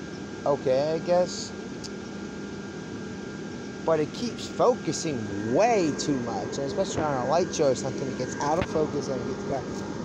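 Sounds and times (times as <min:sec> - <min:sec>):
blower fans whirring: 0:00.0 - 0:10.0
faint constant hum: 0:00.0 - 0:10.0.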